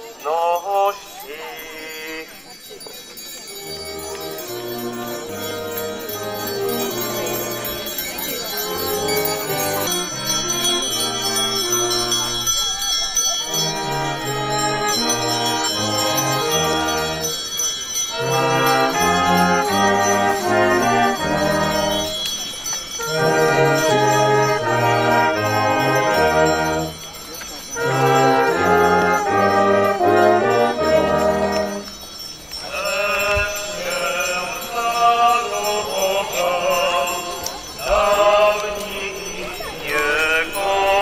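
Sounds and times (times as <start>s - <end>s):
marching brass band: 3.6s - 12.5s, 13.4s - 17.4s, 18.1s - 22.2s, 23.0s - 27.1s, 27.8s - 32.0s
tuba bass line: 13.5s - 17.2s, 18.2s - 22.1s, 23.1s - 26.9s, 27.8s - 31.8s.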